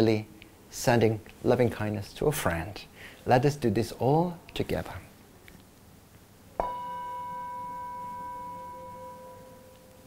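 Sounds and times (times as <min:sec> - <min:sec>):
singing bowl ringing: 0:06.6 - 0:10.0.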